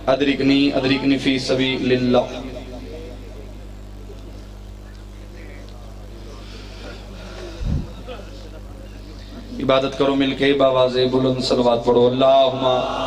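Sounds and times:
electrical hum: 0.0 - 13.0
faint voices: 0.5 - 9.6.

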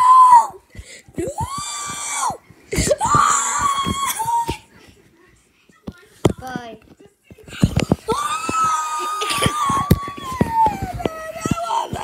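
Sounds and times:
child screaming: 0.0 - 0.6.

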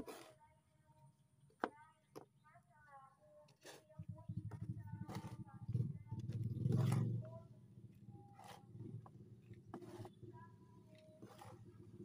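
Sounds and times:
hand trowel scraping soil: 0.0 - 0.4, 3.5 - 4.0, 5.0 - 7.2, 8.2 - 10.3, 10.9 - 12.0.

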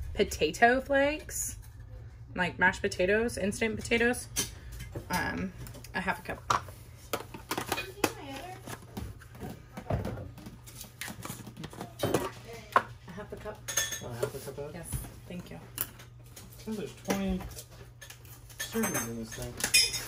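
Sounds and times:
utensils and jars clinking on stone: 17.6 - 20.0.

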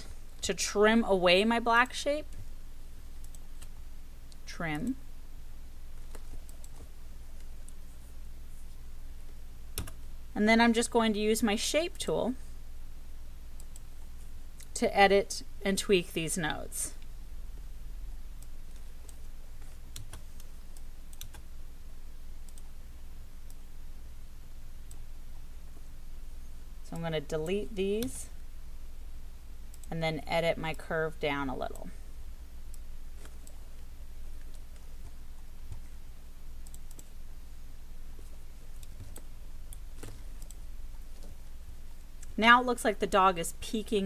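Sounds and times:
steady low hum: 0.0 - 44.0
computer mouse clicks: 3.2 - 4.4, 6.0 - 7.8, 9.8 - 10.0, 13.6 - 13.9, 18.4 - 21.5, 22.4 - 22.7, 36.6 - 37.1, 38.2 - 41.4.

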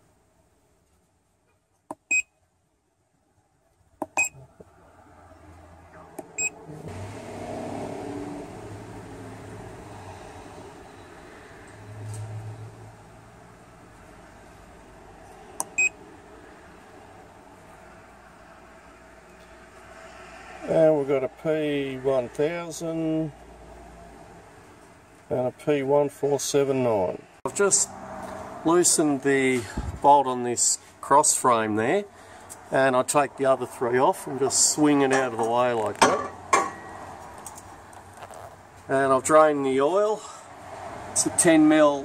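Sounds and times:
scan tool beeps: 4.2 - 4.4, 6.4 - 6.6
man talking: 20.7 - 23.3, 25.3 - 27.9, 28.7 - 32.1, 32.7 - 36.0, 38.9 - 40.3, 41.2 - 42.0.

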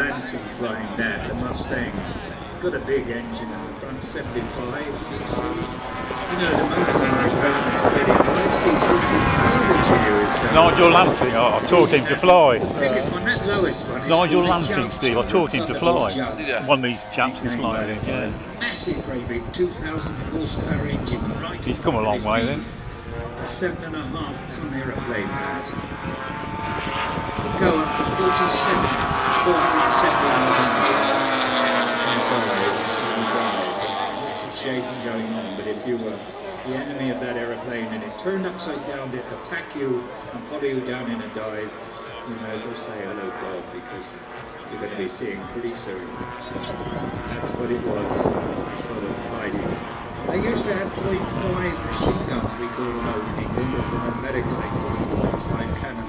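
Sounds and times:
model aircraft engines droning: 0.0 - 56.0
indistinct voices: 10.5 - 12.7, 14.0 - 18.4, 21.6 - 22.6.

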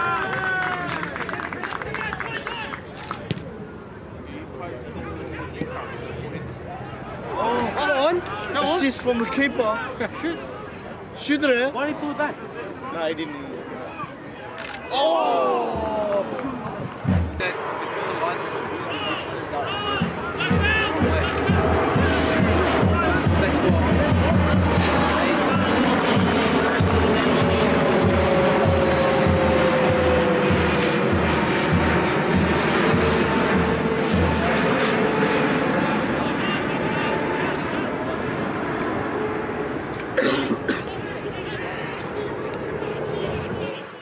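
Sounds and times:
crowd shouting and cheering: 0.0 - 3.0, 14.0 - 17.6, 18.2 - 30.6.

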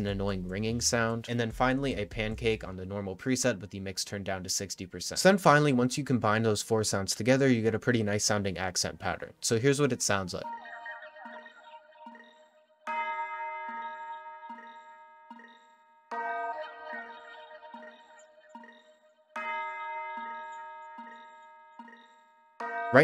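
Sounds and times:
ringing bell-like strike: 19.4 - 23.0.

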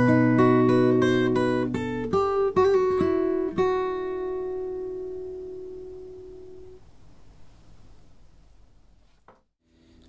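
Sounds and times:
acoustic guitar chord ringing: 0.0 - 6.8
faint room noise: 0.1 - 10.0.

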